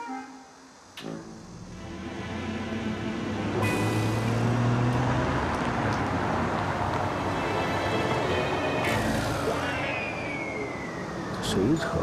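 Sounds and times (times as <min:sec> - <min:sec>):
car engine and tyre noise: 0:00.9 - 0:12.0.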